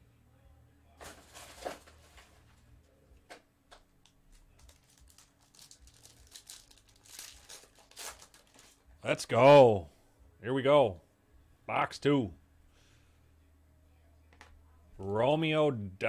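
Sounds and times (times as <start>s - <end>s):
foil wrapper tearing and crinkling: 4.6s - 8.8s.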